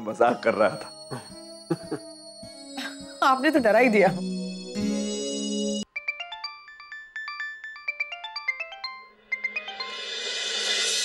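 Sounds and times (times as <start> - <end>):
phone ringtone beeps: 0.9 - 10.0.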